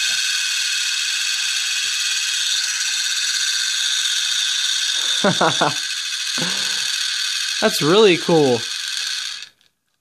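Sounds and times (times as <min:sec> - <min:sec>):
toy spinning on glass whirring: 0:00.0 - 0:10.0.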